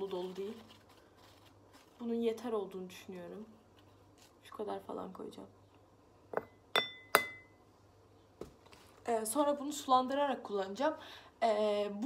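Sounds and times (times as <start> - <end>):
metal spoon tapping glass bowl: 6.4 - 7.6.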